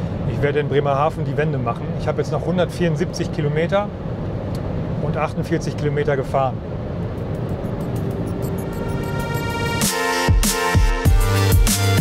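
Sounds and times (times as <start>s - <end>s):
road and wind noise in car: 0.0s - 10.3s
background music held notes: 7.2s - 12.0s.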